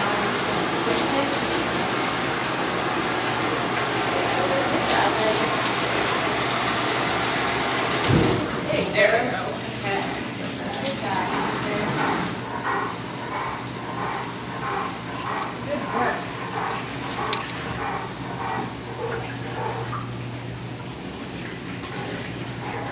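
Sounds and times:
treadmill low hum: 0:00.0 - 0:22.9
water sloshing: 0:00.0 - 0:22.9.

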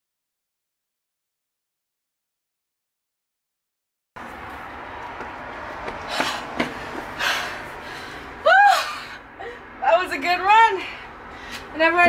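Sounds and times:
woman breathing heavily: 0:05.9 - 0:09.8, 0:10.8 - 0:11.8.

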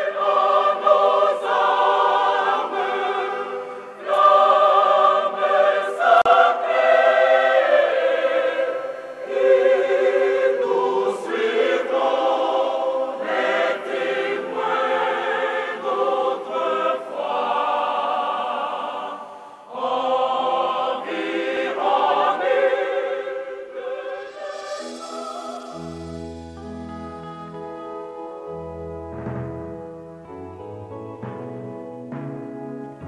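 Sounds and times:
church choir singing: 0:00.0 - 0:28.6.

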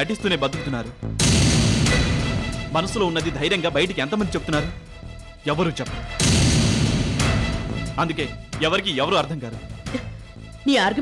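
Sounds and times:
background music: 0:00.0 - 0:11.0
dramatic sound effect hit: 0:01.2 - 0:02.6, 0:06.2 - 0:07.8.

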